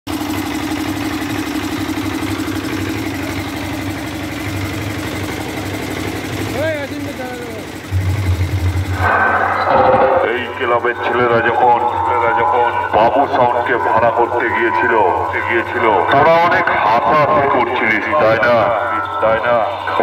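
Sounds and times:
pulsing engine drone: 0.1s - 20.0s
deep low hum: 7.7s - 20.0s
voice through horn loudspeakers: 9.0s - 20.0s.

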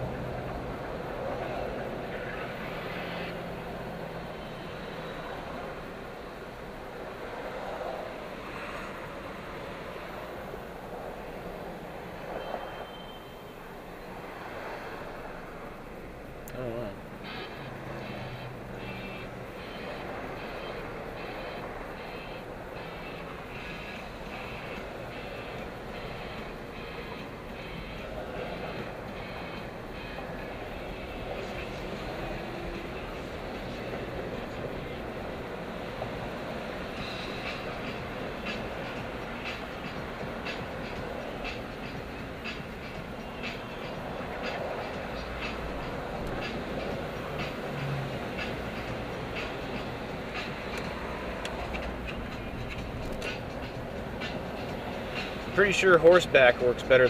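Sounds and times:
car cabin road and engine noise: 0.0s - 57.0s.

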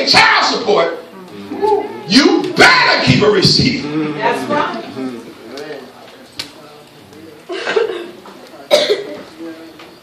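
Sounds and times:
faint voices: 1.0s - 10.0s
person coughing: 7.5s - 9.2s.

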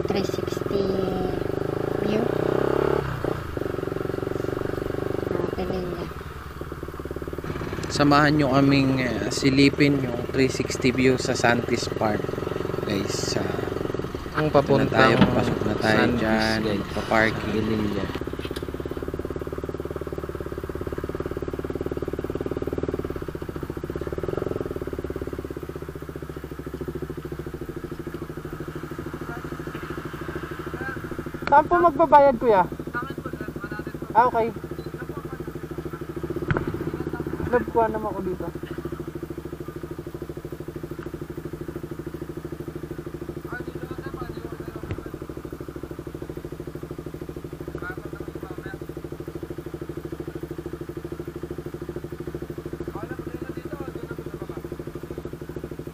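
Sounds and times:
motorcycle engine running: 0.0s - 55.9s.

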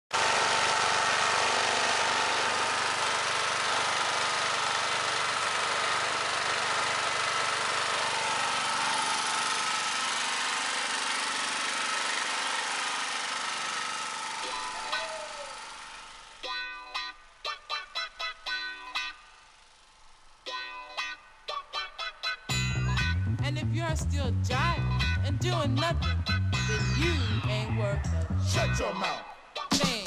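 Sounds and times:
portable generator humming: 0.2s - 30.0s.

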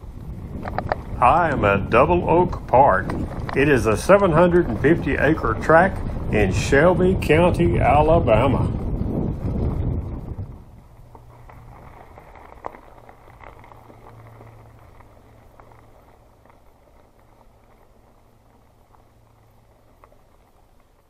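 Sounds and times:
bike rolling and rattling on dirt: 0.0s - 21.0s.

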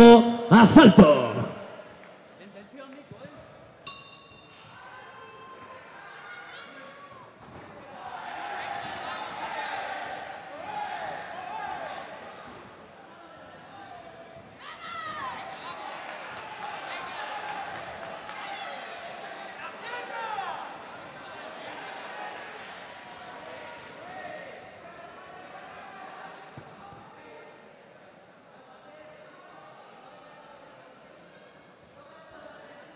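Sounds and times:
ringing bell tone: 3.9s - 4.6s.

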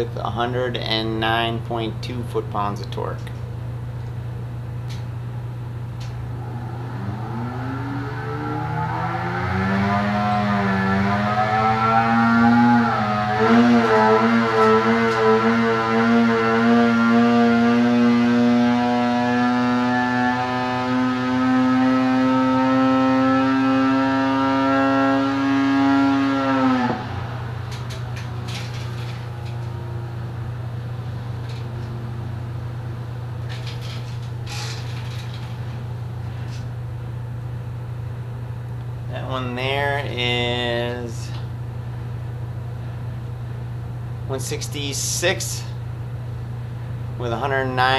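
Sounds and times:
steady low hum: 0.0s - 47.9s
two-stroke engine at full throttle: 7.2s - 28.0s.

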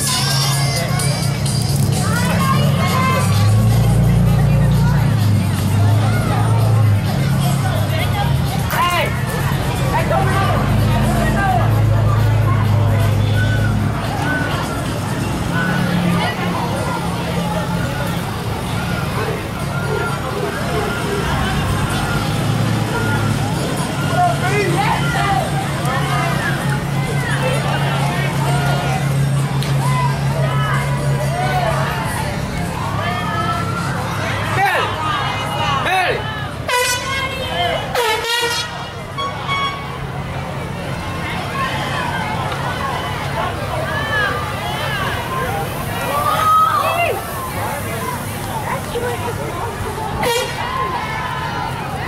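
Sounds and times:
children's voices: 0.0s - 52.0s
crowd chatter: 0.0s - 52.0s
truck engine humming: 0.0s - 52.0s
vehicle horn toot: 36.7s - 40.0s, 50.2s - 50.8s.

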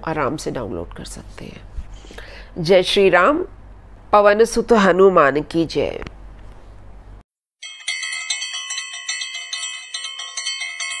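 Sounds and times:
bells ringing: 7.6s - 11.0s.

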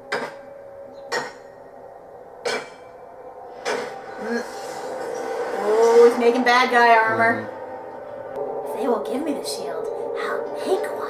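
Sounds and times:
metal being hammered: 0.0s - 0.5s, 1.1s - 1.6s, 2.4s - 3.0s, 3.6s - 4.1s.

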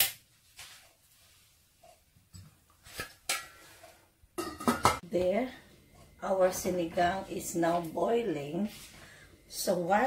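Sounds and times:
metal pot lid knock and clink: 4.4s - 5.0s.

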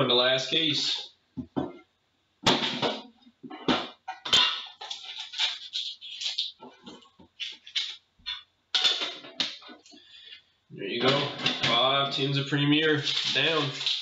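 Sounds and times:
foil pack crinkling: 4.8s - 8.0s, 11.1s - 14.0s.

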